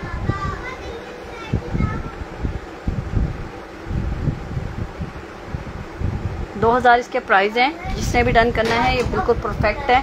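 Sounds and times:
microphone handling thumps: 7.9s - 9.8s.

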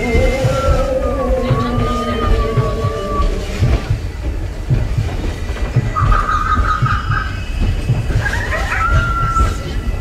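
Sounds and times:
train wheels clattering over rail joints: 0.0s - 10.0s.

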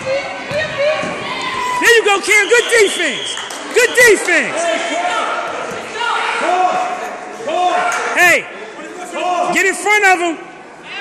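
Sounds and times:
voices shouting in a gymnasium: 0.0s - 11.0s.

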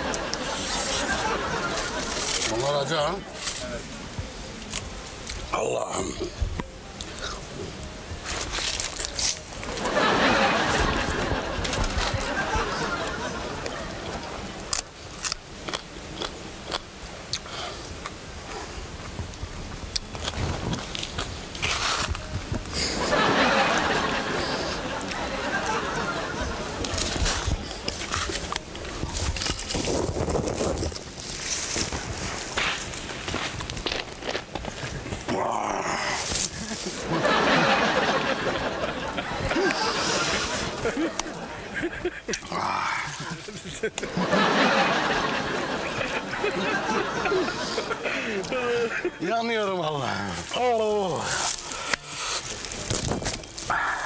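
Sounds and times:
man crunching a pepper: 0.3s - 2.6s, 8.4s - 9.8s, 14.7s - 18.2s, 19.9s - 22.2s, 26.8s - 32.0s, 42.2s - 43.6s, 51.2s - 54.0s
footsteps through dry undergrowth: 26.9s - 35.3s, 51.2s - 53.8s.

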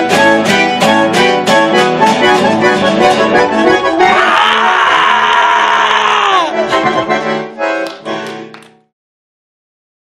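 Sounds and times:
man yelling: 4.0s - 6.6s.

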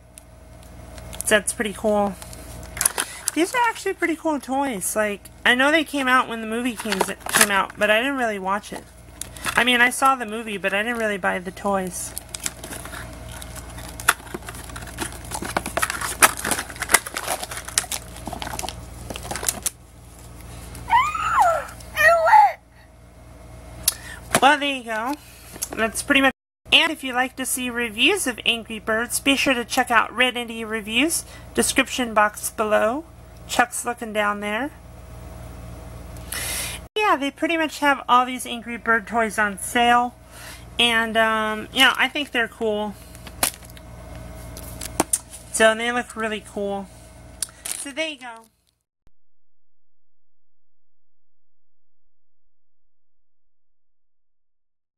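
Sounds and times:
plastic packaging clicks and crinkles: 11.8s - 19.8s
talking toy high-pitched voice: 20.9s - 22.7s
low hum: 49.1s - 54.9s.

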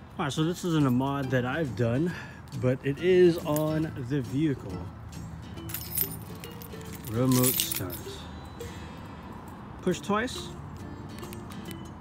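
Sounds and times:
faint background music: 0.0s - 12.0s
keys jangling: 5.6s - 8.2s.

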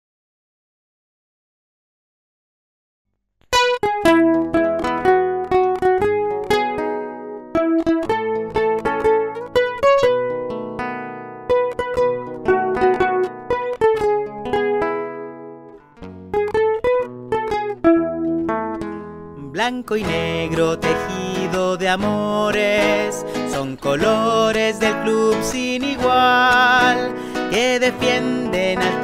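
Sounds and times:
plucked strings melody: 3.4s - 29.0s.

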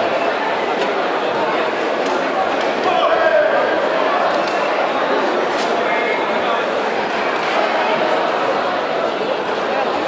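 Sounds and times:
echoing chatter of many voices: 0.0s - 10.0s.

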